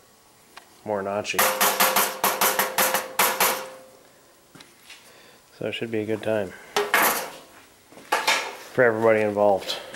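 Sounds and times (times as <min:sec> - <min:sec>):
tool tapping on metal grill: 0:01.4 - 0:03.8.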